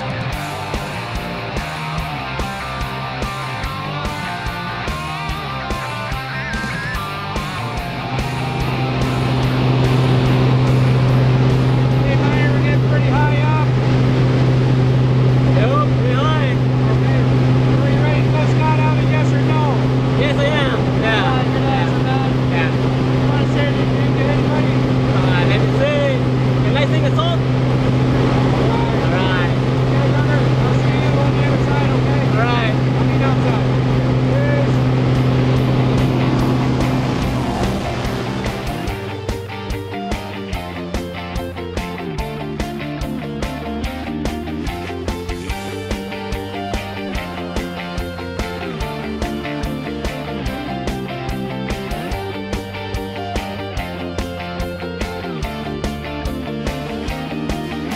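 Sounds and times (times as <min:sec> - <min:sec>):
propeller plane engine droning: 0:00.0 - 0:57.9.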